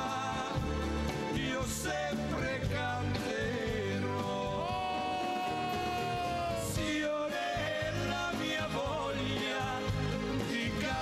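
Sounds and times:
live pop band playing: 0.0s - 11.0s.

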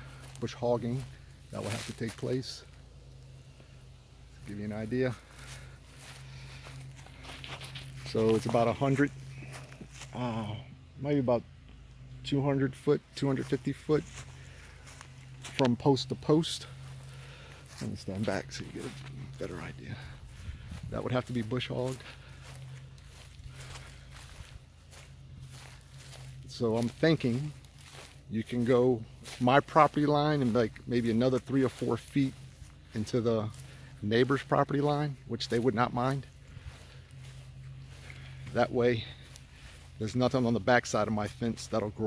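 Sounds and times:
footsteps on dry leaves: 0.0s - 42.0s
steady low hum: 0.0s - 42.0s.

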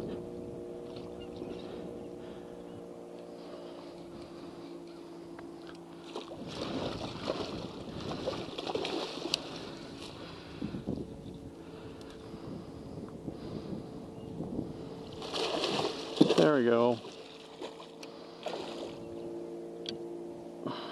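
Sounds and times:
steady electric motor hum: 0.0s - 20.9s
water splashing and churning: 3.0s - 10.9s, 14.7s - 19.1s.

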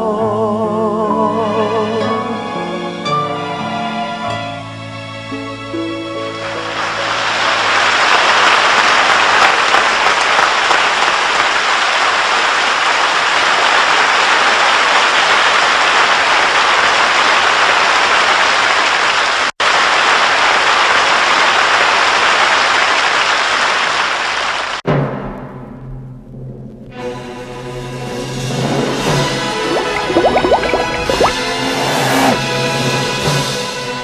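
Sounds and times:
audience applauding: 6.5s - 24.8s.

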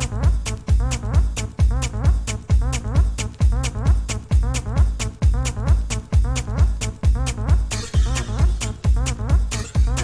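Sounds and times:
hi-hats: 0.0s - 10.0s
kick drum: 0.0s - 10.0s
synth riff bending in pitch: 7.7s - 8.8s.

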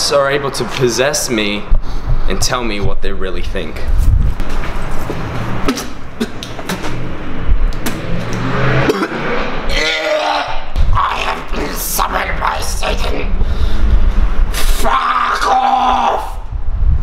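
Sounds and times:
man making wordless vocal noises: 9.8s - 13.6s, 14.5s - 16.5s.

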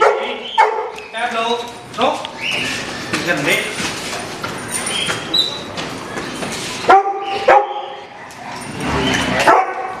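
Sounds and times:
dog barking: 0.0s - 1.0s, 6.9s - 8.8s, 9.4s - 10.0s.

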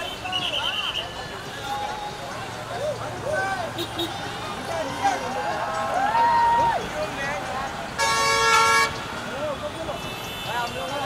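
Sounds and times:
vehicle horn blast: 8.0s - 9.0s.

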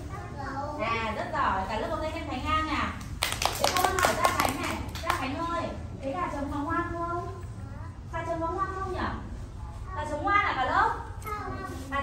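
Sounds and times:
children's voices: 0.0s - 1.2s, 7.1s - 10.3s, 11.0s - 12.0s
people clapping hands: 3.0s - 5.3s.

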